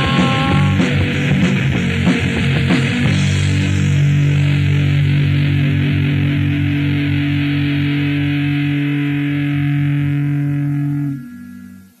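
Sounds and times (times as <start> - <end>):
distorted electric guitar chord ringing: 0.0 - 12.0
pulsing low end: 3.1 - 12.0.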